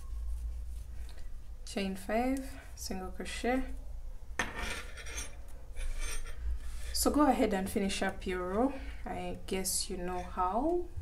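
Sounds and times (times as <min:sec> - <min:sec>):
hands rubbing yarn on wooden table: 0:00.0 - 0:03.0.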